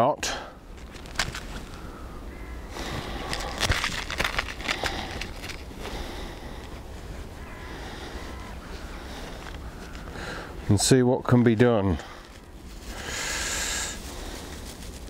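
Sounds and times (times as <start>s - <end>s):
rustling undergrowth: 0.5s - 15.0s
crackles and scuffs in brush: 0.7s - 15.0s.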